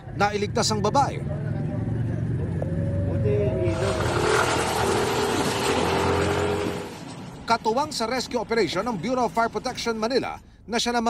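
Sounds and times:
outboard motor running: 3.6 - 7.1.

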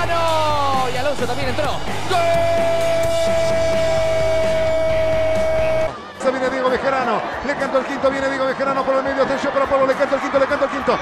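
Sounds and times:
background music: 0.0 - 11.0
commentator calling a goal: 0.0 - 11.0.

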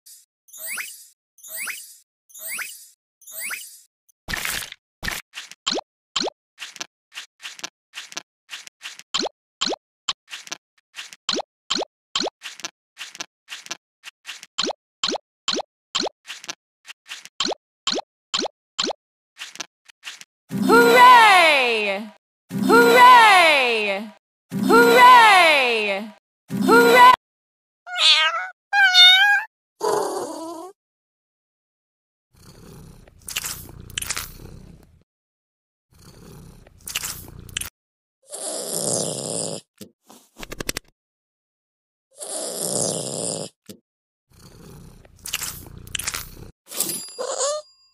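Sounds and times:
chewing and crunching: 6.6 - 9.1, 12.4 - 14.5, 16.3 - 17.3, 33.0 - 35.0, 36.6 - 37.7, 44.9 - 46.5.

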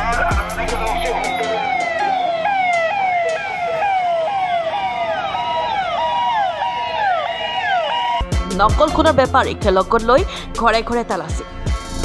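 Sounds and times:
police siren: 0.6 - 9.6.

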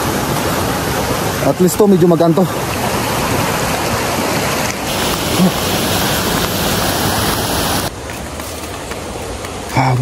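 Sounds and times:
rushing outdoor noise: 0.0 - 10.0.

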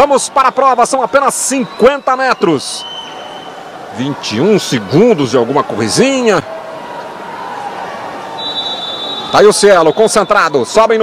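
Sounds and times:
crowd noise: 0.0 - 11.0
long high whistle: 1.6 - 3.6, 8.4 - 10.5.

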